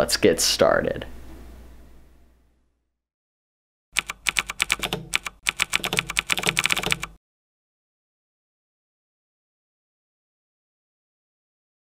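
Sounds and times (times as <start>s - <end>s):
keyboard key clicks: 4.0s - 7.2s.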